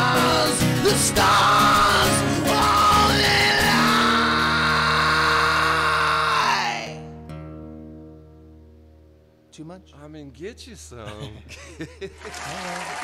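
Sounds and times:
man singing a long note: 0.0s - 7.1s
acoustic guitars: 0.0s - 10.5s.

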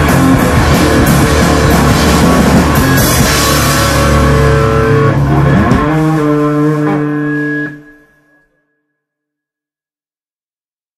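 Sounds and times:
distorted guitar chord ringing: 0.0s - 8.6s.

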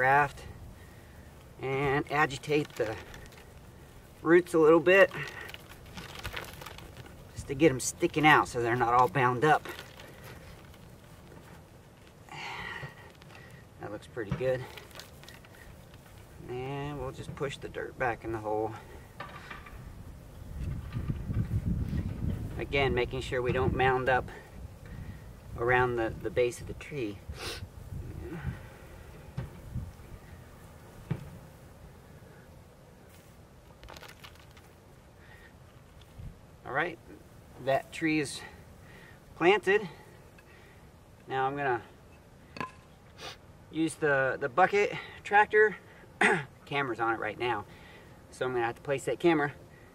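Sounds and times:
soft crackles: 0.0s - 17.7s, 24.0s - 36.4s
hands rustling in loose soil: 0.0s - 40.4s
hands patting soil: 1.4s - 17.7s.

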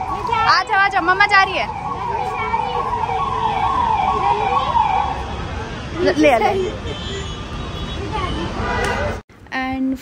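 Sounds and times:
siren wailing: 0.0s - 6.5s.

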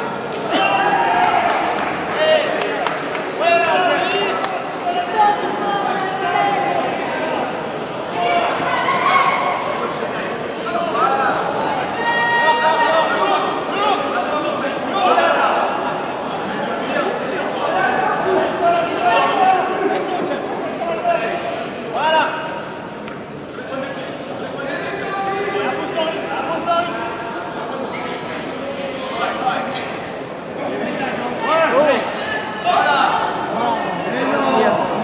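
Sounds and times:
many voices talking and calling out: 0.0s - 35.0s.

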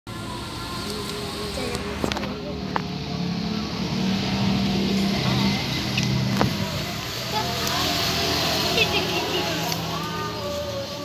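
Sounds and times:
engine running: 0.1s - 11.0s.

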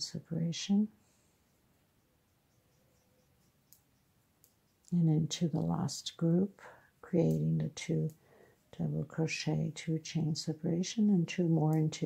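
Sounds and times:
woman speaking: 0.0s - 0.9s, 4.9s - 8.1s, 8.8s - 12.0s.

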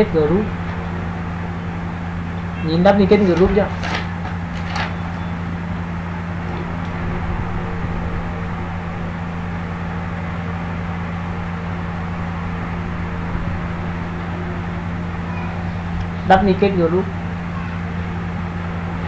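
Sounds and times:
low hum: 0.0s - 19.0s.

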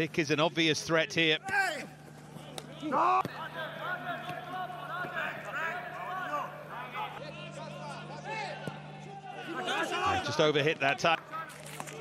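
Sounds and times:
steady low hum: 0.0s - 12.0s
players shouting: 1.3s - 12.0s.

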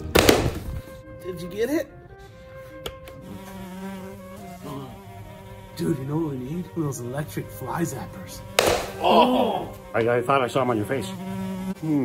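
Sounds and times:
fly buzzing: 0.0s - 1.2s, 2.2s - 12.0s.

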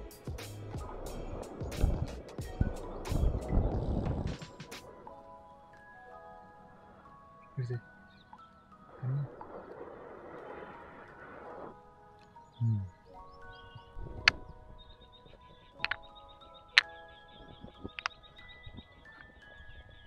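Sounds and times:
music with chime-like tones: 0.0s - 10.6s, 11.7s - 20.0s.

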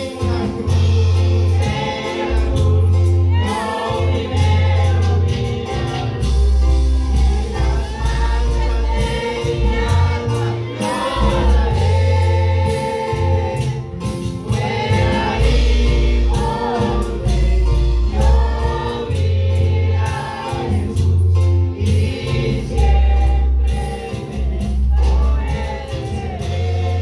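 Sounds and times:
man singing into a microphone: 0.0s - 12.2s, 14.6s - 21.0s
deep bass line: 0.0s - 27.0s
drums: 0.0s - 27.0s
keyboard: 0.0s - 27.0s.

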